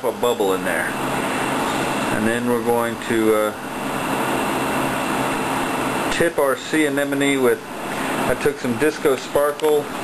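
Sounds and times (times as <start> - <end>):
torch flame roaring: 0.0 - 10.0.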